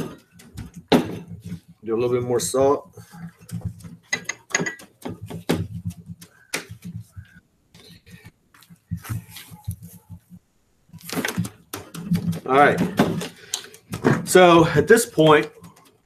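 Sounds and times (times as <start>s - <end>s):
hands rubbing salt on skin: 4.8s - 10.4s.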